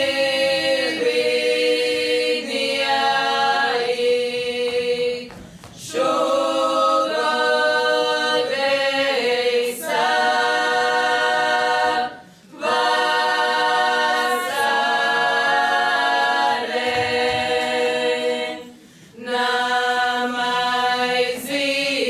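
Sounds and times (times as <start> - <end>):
group singing a cappella: 0.0 - 22.0.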